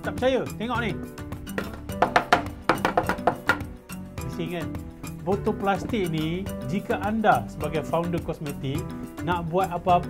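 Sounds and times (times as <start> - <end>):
background music: 0.0 - 10.0
plastic bottle clattering on table: 1.5 - 3.7.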